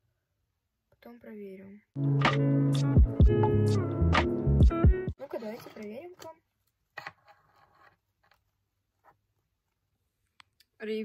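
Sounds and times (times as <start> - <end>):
faint scraping and rustling: 5.2 - 9.8.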